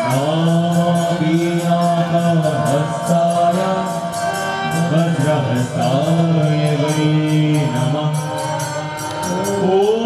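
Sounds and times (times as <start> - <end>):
person chanting long notes: 0.0 - 10.0.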